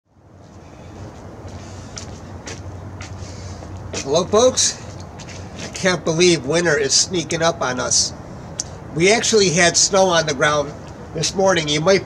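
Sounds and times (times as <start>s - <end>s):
outdoor background rumble: 0.1s - 12.0s.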